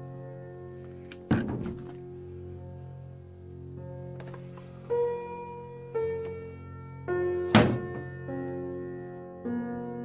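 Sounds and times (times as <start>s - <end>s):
instrumental background music: 0.0s - 10.0s
plastic drawer thunk: 1.3s - 2.0s, 7.5s - 8.1s.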